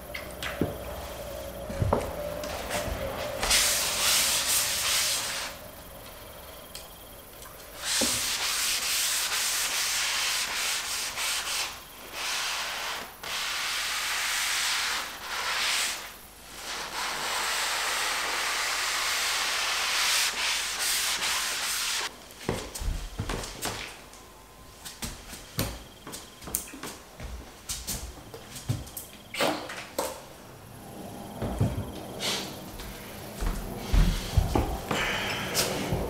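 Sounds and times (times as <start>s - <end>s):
sponge scrubbing wooden floorboards: 1.0s - 5.6s, 7.8s - 22.1s.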